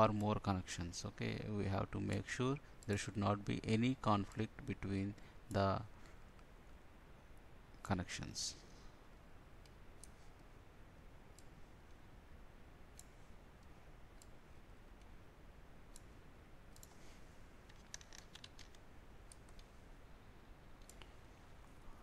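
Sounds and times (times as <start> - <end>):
computer mouse clicks: 9.6 - 10.5, 11.3 - 12.0, 12.9 - 14.4, 15.9 - 17.0, 17.6 - 19.7, 20.8 - 21.2.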